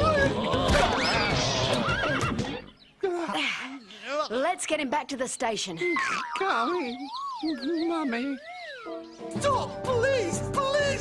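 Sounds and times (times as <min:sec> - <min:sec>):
cartoon horse neighing: 0:01.0 - 0:02.7.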